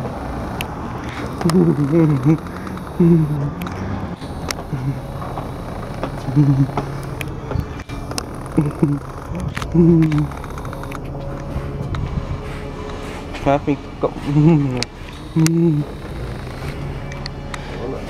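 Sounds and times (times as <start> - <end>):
bus engine rumbling: 0.0 - 18.0
person humming: 1.1 - 10.9, 14.2 - 16.6.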